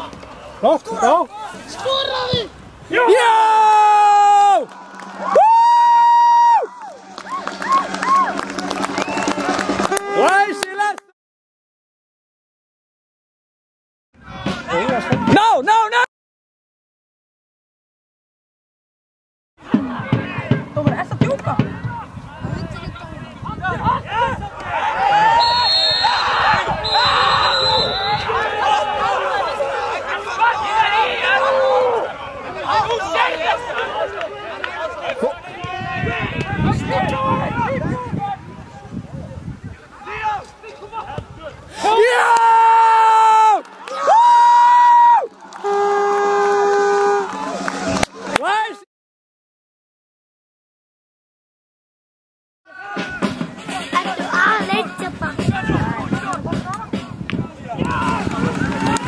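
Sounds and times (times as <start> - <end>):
faint crowd noise: 0.0 - 5.4, 14.2 - 15.9, 19.6 - 44.2, 52.7 - 59.0
players shouting: 0.0 - 11.0, 19.6 - 38.7, 40.0 - 48.8, 52.7 - 59.0
referee's whistle blasts: 25.3 - 28.3.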